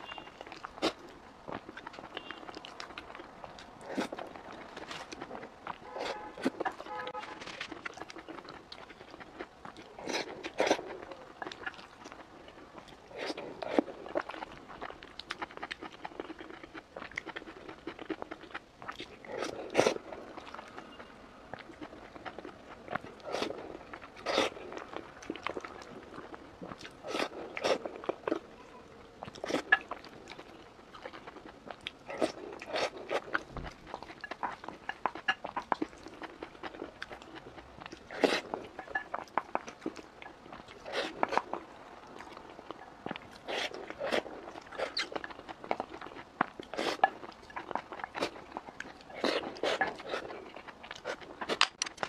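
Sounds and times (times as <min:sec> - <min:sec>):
person chewing food: 0:00.0 - 0:28.5, 0:29.1 - 0:52.0.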